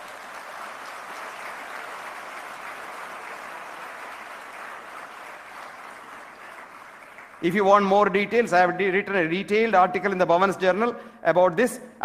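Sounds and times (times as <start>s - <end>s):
audience applauding: 0.0s - 7.9s.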